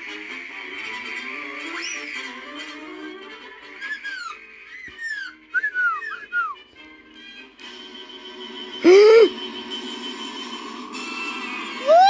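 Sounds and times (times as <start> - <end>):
music: 0.0 - 12.0
short rising and falling whistles: 4.8 - 6.6.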